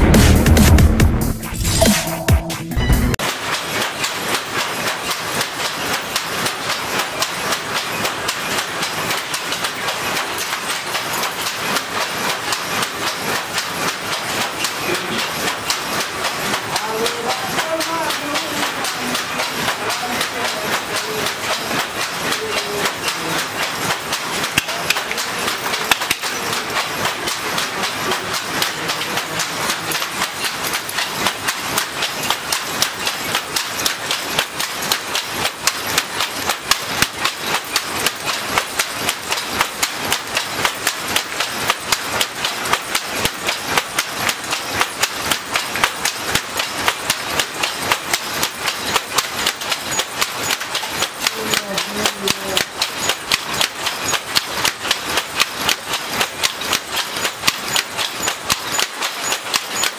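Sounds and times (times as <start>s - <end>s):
wooden hand looms clattering: 3.2s - 59.9s.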